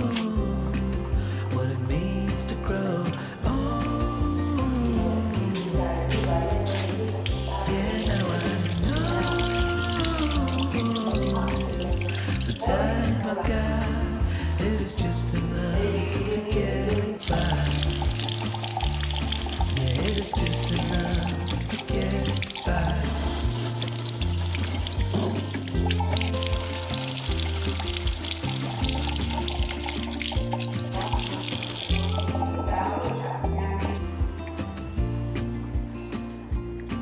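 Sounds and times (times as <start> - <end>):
background music: 0.0 - 37.0
tap water splashing on vegetables: 7.3 - 12.7, 17.2 - 32.3.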